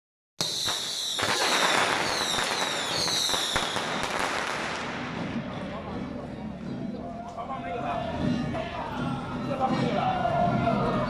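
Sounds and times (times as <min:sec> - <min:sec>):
firecrackers crackling: 0:00.4 - 0:05.8.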